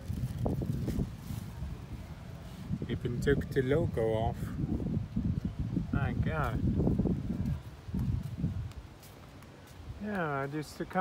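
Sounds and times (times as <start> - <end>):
wind rumble on microphone: 0.0 - 11.0
footsteps on pavement: 6.4 - 11.0.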